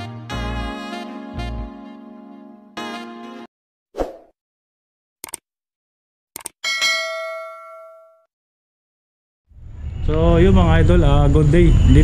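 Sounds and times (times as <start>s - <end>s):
notification bell ding: 6.6s - 8.3s.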